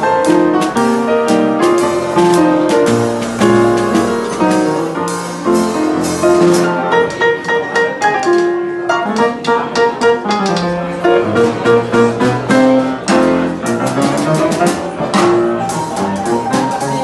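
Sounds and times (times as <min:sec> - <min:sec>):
boogie-woogie piano: 0:00.0 - 0:17.0.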